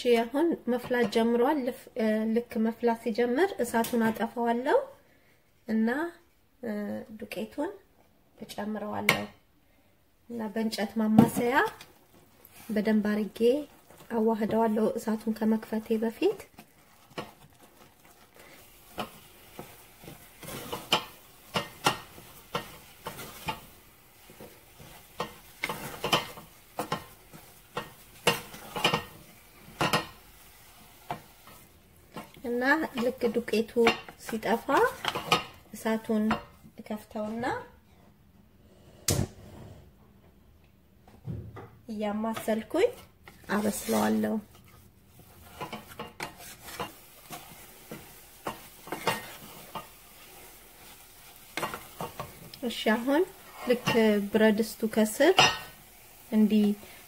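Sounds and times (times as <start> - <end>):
wooden spatula scraping saucepan: 10.5 - 37.5, 42.3 - 57.0.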